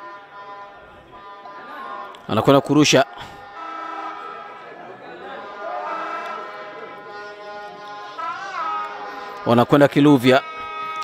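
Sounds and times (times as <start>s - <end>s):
wavering call: 0.0s - 9.5s
spectators holding notes: 0.0s - 11.0s.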